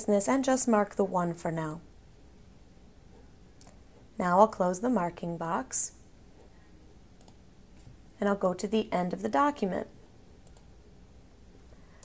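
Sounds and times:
faint computer clicks: 7.2 - 7.4, 10.4 - 10.7.

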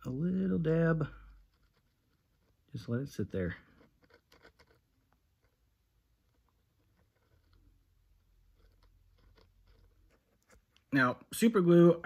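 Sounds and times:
soft faint rustle: 0.0 - 11.1.

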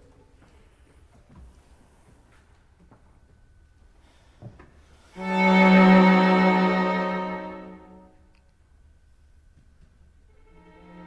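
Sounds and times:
string quartet sustained chord: 5.1 - 8.2, 10.4 - 11.0.

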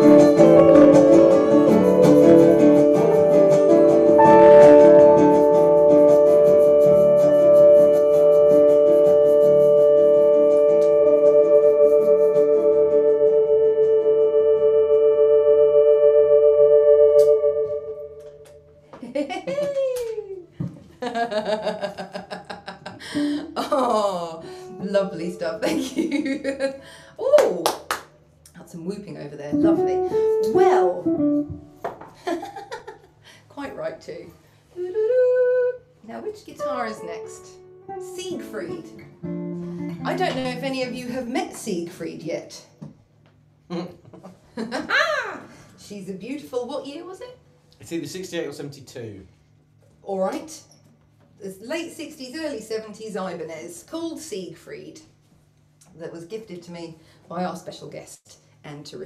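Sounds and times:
electric guitar ringing chord: 0.0 - 18.7, 29.6 - 31.8, 36.6 - 41.4.

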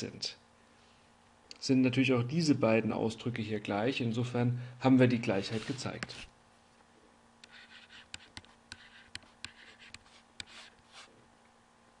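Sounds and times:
stylus scratchy strokes: 5.2 - 6.3, 7.4 - 11.1
stylus tapping on tablet: 7.4 - 10.6.

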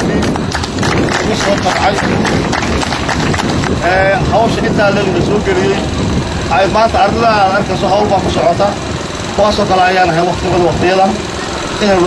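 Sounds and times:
man speaking into a microphone: 1.1 - 2.5, 3.8 - 12.0.

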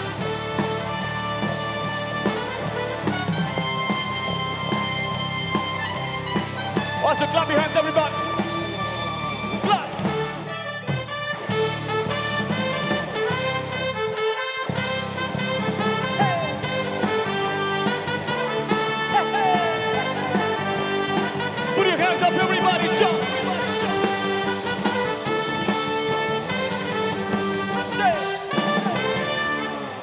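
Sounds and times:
bass guitar: 0.0 - 30.0
drums: 0.0 - 30.0
electric guitar: 0.0 - 30.0.

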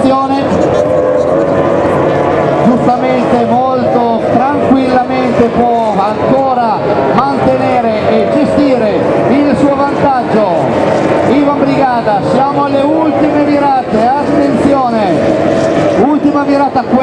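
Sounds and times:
commentator speaking: 0.0 - 1.8, 2.5 - 17.0
powerboat outboard engines racing: 0.0 - 17.0.

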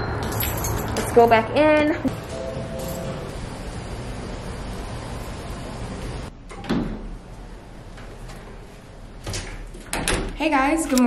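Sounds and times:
door opening and shutting: 2.0 - 3.5, 6.4 - 10.4.

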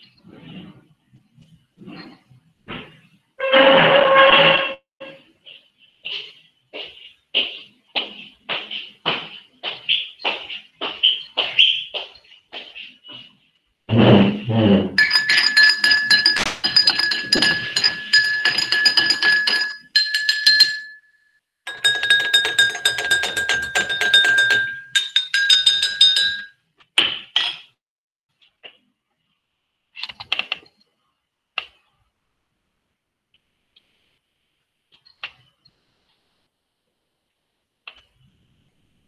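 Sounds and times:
tableware clinking: 15.0 - 21.1, 21.7 - 26.5
steady ringing tone: 15.0 - 26.5.

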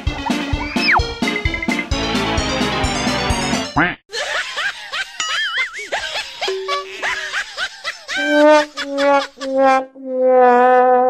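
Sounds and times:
rising cartoon squeaks: 0.6 - 1.0
sad trombone sound effect: 8.2 - 11.0.

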